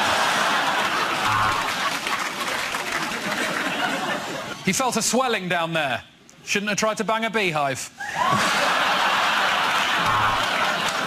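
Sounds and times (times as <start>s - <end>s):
audience applauding: 0.0s - 4.1s, 8.4s - 11.0s
short steady tone: 10.0s - 10.4s.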